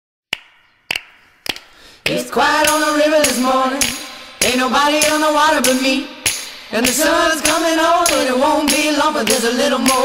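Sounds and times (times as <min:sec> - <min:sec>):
wooden clicks count-in: 0:06.8 - 0:10.0.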